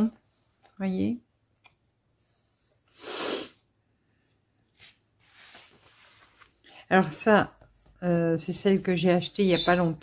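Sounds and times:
person exhaling sharply: 2.9 - 3.6.

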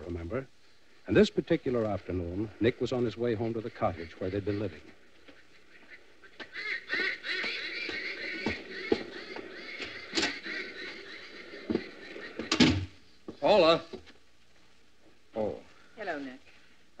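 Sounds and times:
birds calling: 0.0 - 14.3
knocks and thumps: 11.6 - 13.0.

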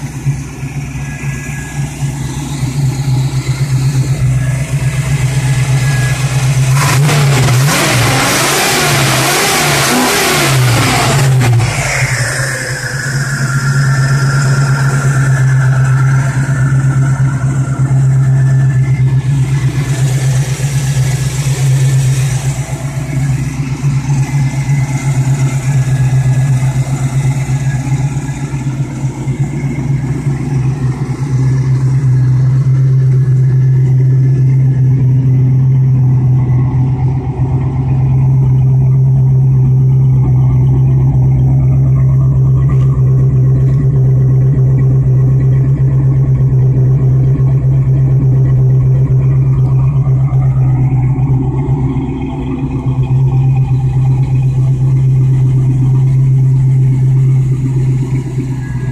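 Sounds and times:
car engine idling and revving: 0.0 - 58.9
high whine: 0.0 - 58.9.

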